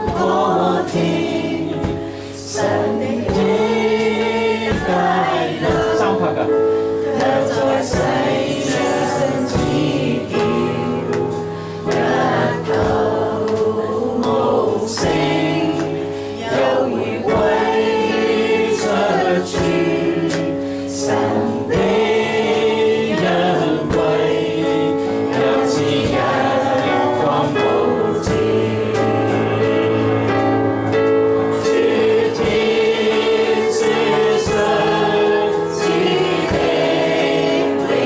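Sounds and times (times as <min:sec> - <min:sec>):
electronic keyboard with beat: 0:00.0 - 0:38.0
voices singing a hymn: 0:00.0 - 0:38.0.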